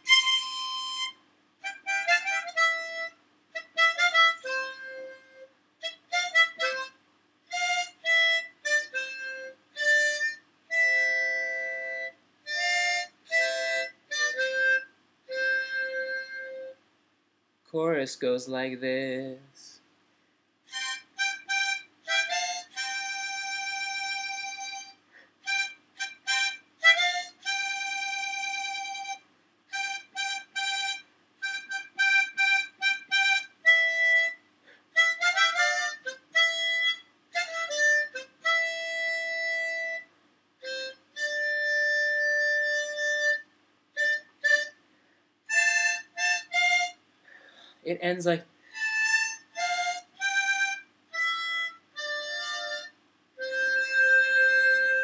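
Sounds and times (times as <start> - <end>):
harmonica playing: 0.0 - 16.8, 20.7 - 44.9, 45.5 - 55.0
person breathing: 25.1 - 25.4, 47.2 - 47.9.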